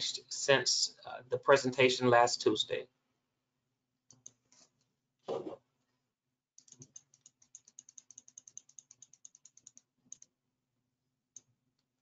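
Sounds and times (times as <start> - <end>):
mouse scroll wheel clicking: 6.6 - 10.3.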